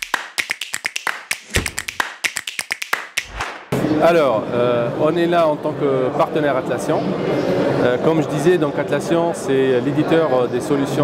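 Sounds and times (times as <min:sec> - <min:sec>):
sharp clicks and taps: 0:00.0 - 0:03.6
low thumps: 0:01.4 - 0:02.0.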